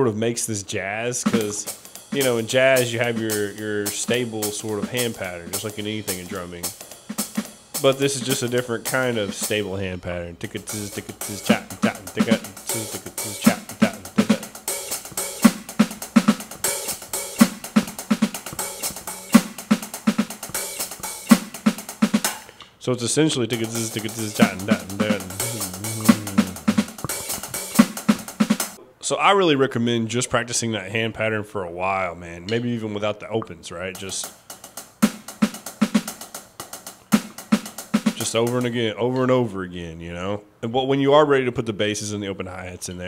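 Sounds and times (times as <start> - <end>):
electronic drum kit playing: 1.2 - 9.7, 10.5 - 22.5, 23.3 - 28.8, 34.0 - 38.7
electronic snare hits: 10.7 - 22.5.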